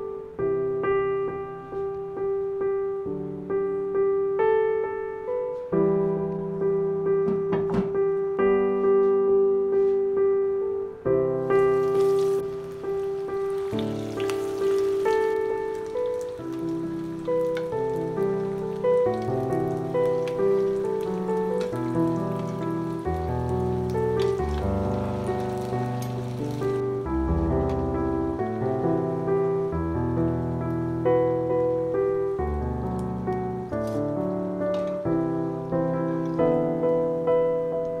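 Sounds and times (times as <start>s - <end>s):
piano music: 0.0s - 38.0s
food sizzling in hot oil: 11.4s - 29.7s.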